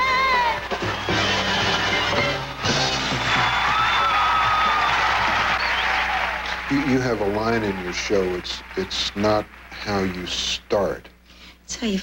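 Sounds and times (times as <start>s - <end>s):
audience applauding: 0.0s - 11.0s
man speaking: 6.6s - 11.2s.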